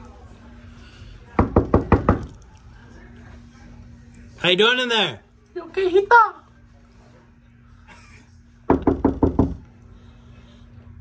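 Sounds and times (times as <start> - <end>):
knuckles knocking on door: 1.4 - 2.3, 8.7 - 9.6.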